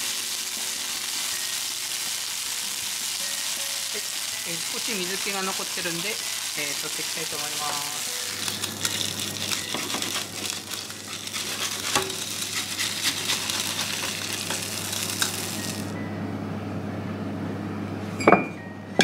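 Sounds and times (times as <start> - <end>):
dumplings sizzling in frying pan: 0.0 - 15.9.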